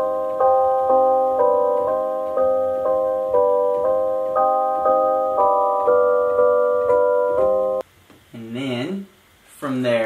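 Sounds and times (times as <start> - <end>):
synth chords: 0.0 - 7.8.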